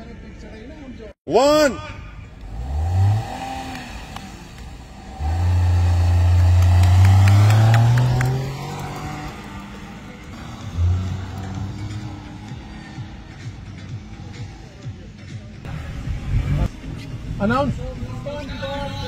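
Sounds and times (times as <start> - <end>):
car engine revving: 2.2 - 17.0.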